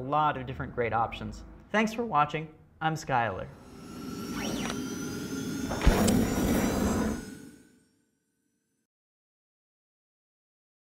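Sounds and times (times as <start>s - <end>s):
electronic rushing swoosh: 3.5s - 7.8s
sharp electronic hit: 3.6s - 7.9s.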